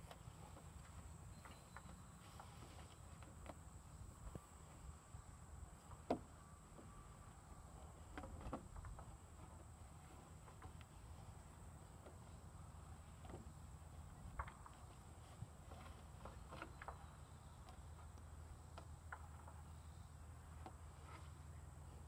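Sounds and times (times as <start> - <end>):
faint high whine: 0.0 - 22.0.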